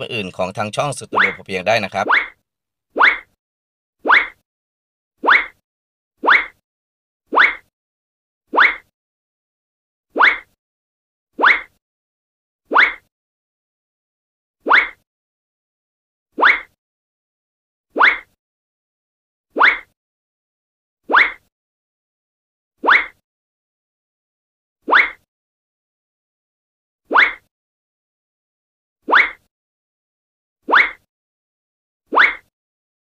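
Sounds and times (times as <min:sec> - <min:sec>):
cartoon bloop: 0:00.0 - 0:02.4.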